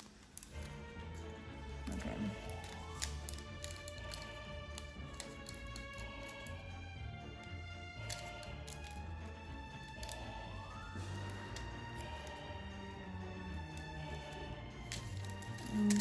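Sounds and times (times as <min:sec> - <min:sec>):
background music with low beat: 0:00.0 - 0:16.0.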